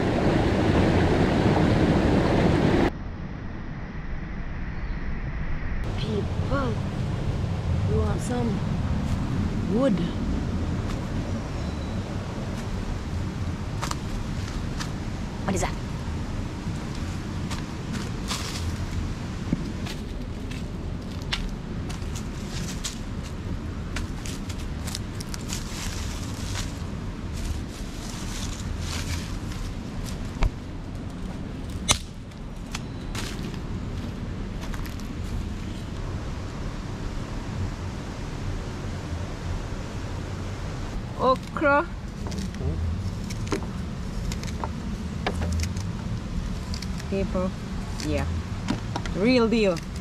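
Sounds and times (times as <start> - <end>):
steady low rumble: 0.0 - 50.0
sticks and leaves rustling underfoot: 16.8 - 36.0, 41.0 - 48.3
sticks snapping: 31.7 - 32.9.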